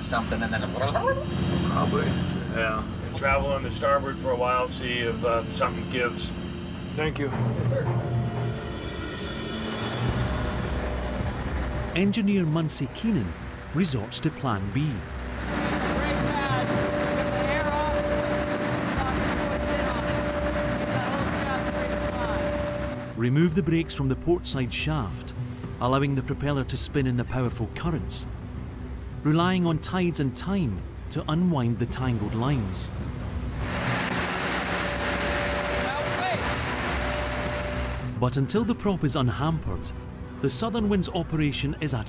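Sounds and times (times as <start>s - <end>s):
rising and falling tones: 0.0s - 12.0s
thin steady whine: 0.0s - 13.8s, 15.0s - 23.2s, 33.3s - 38.2s
diesel engine drone: 0.0s - 23.2s, 32.1s - 38.4s
diesel engine running: 15.0s - 23.2s, 33.3s - 38.2s
broad rushing noise: 15.1s - 23.2s, 33.0s - 38.2s.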